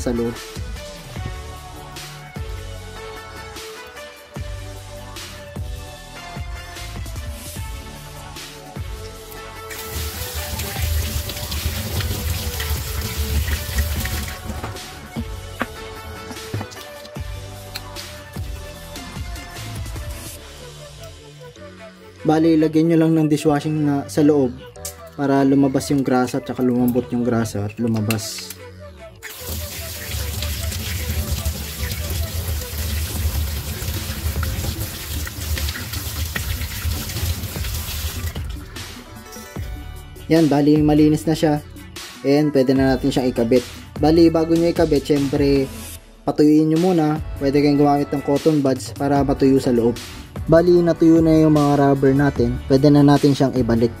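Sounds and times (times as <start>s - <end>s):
background music: 0.0s - 54.0s
rinsing rubber parts by hand: 9.7s - 17.2s, 29.2s - 38.8s.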